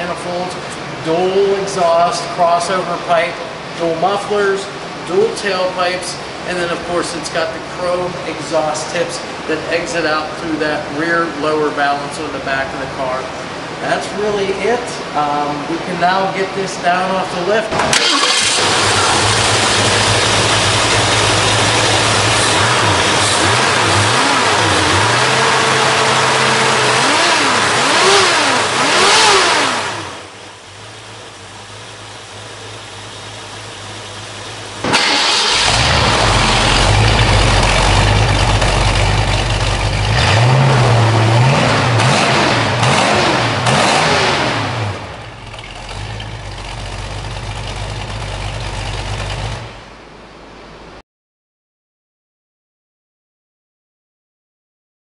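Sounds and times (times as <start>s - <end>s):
car engine revving and idling: 17.9s - 50.0s.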